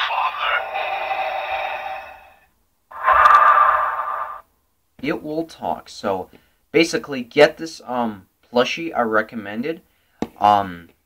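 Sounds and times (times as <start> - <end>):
tinny mask breathing from toy speaker: 0.0 - 4.4.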